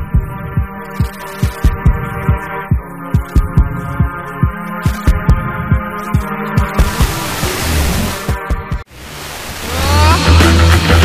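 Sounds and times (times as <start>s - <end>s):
heavy bass-drum beat: 0.0s - 8.9s, 9.7s - 11.0s.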